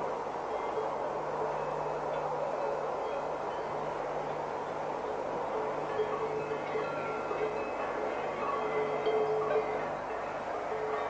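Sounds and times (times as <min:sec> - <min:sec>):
electric train rushing past: 0:00.0 - 0:11.0
faint ringing tones: 0:00.0 - 0:11.0.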